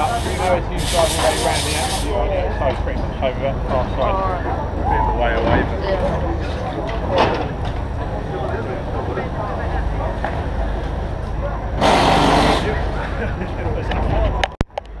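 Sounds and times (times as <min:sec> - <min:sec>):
crew chatter: 0:00.0 - 0:02.2, 0:06.0 - 0:14.5
loud hiss: 0:00.0 - 0:02.2
steady low hum: 0:00.0 - 0:15.0.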